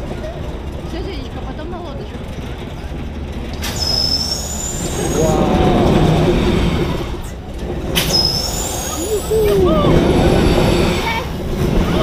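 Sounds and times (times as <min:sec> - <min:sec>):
amusement ride rumble: 0:00.0 - 0:12.0
thin high whistle: 0:08.0 - 0:09.1.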